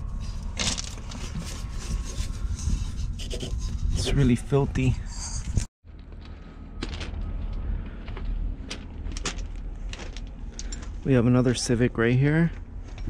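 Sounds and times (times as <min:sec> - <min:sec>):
wind rumble on microphone: 0:00.0 - 0:11.0
footsteps on gravel: 0:05.9 - 0:11.2.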